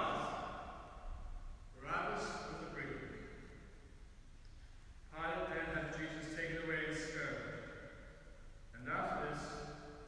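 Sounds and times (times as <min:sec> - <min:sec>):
man reading in echoing church: 0:00.0 - 0:10.0.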